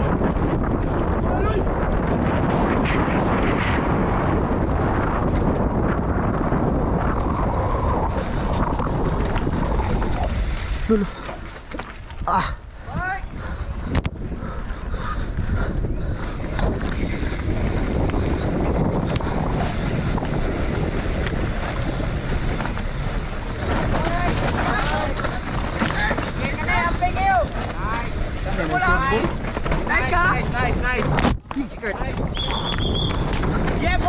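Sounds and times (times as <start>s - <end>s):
bike rattling: 0.0s - 34.0s
wind rushing over microphone: 0.0s - 34.0s
tyres rolling over dirt: 2.4s - 12.3s, 16.4s - 34.0s.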